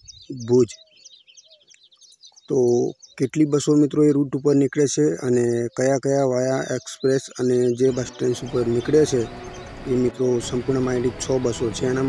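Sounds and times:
faint bird chirping: 0:00.0 - 0:11.9.

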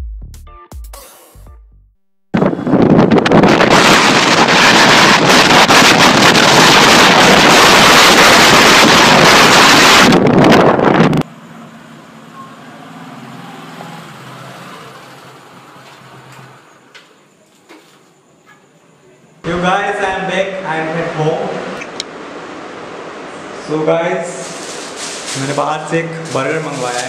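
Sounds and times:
wind buffeting microphone: 0:02.4 - 0:11.3
motorcycle engine and road noise: 0:02.4 - 0:17.2.

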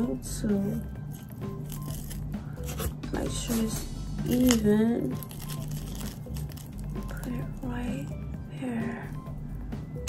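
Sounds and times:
quiet background music: 0:00.0 - 0:10.0
foam crinkling on cardboard: 0:00.7 - 0:08.1.

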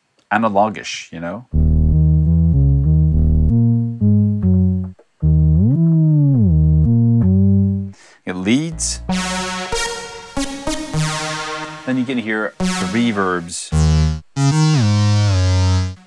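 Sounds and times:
buzzy synth lead stabs: 0:01.5 - 0:07.9, 0:08.7 - 0:16.0
deep synth bass notes: 0:01.5 - 0:08.0, 0:08.7 - 0:16.0.

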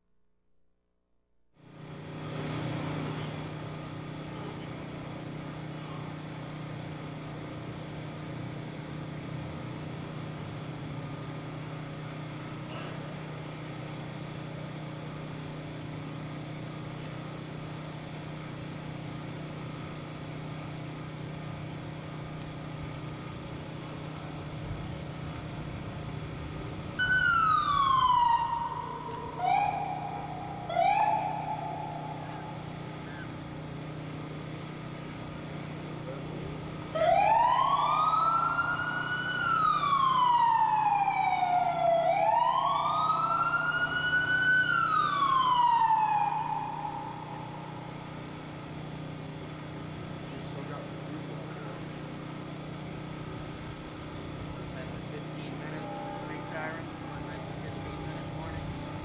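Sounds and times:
low street hum: 0:01.6 - 0:59.0
warning siren wailing: 0:24.6 - 0:33.7, 0:36.6 - 0:48.6, 0:55.4 - 0:59.0.

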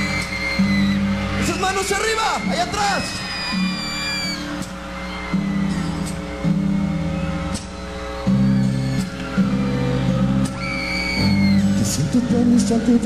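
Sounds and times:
live band playing sustained chords: 0:00.0 - 0:13.0.

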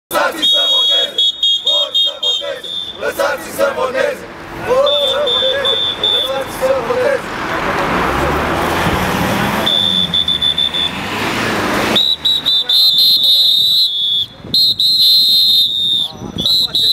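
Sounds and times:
crowd shouting: 0:00.1 - 0:07.7
shrill whistle blasts: 0:00.3 - 0:03.2, 0:04.8 - 0:06.5, 0:09.6 - 0:11.1, 0:11.9 - 0:16.9.

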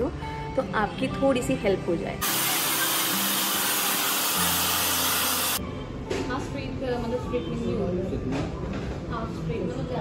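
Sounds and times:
hair dryer blowing: 0:02.2 - 0:05.6.

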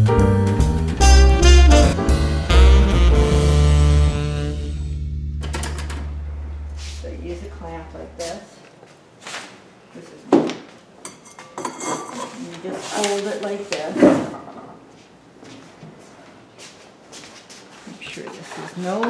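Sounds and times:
background music: 0:00.0 - 0:06.9.

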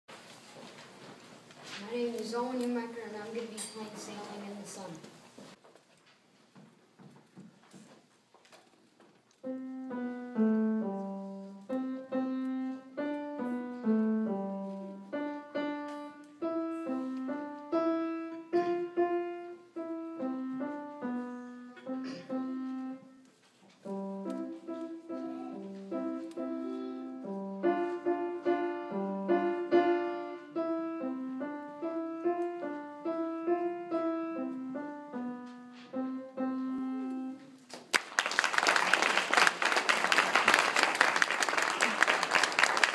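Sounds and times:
solo piano melody: 0:09.4 - 0:37.6.

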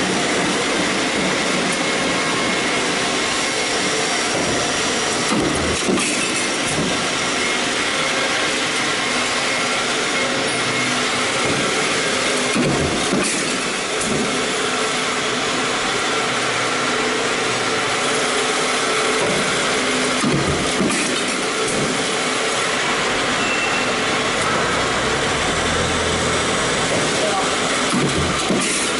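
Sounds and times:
stamping press running: 0:00.0 - 0:28.9.

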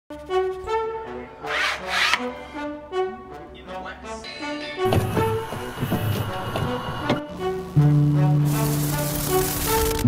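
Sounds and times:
background music of held notes: 0:00.1 - 0:10.0
knife scraping along straightedge: 0:01.5 - 0:02.6.

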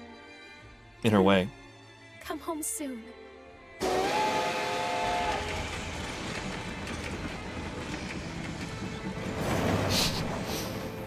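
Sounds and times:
steam locomotive whistle: 0:03.8 - 0:06.1
train running: 0:03.8 - 0:11.0.

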